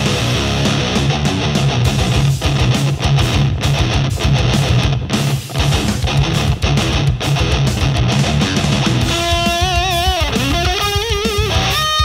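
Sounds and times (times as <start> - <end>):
distorted electric guitar metal riff: 0.0 - 12.0.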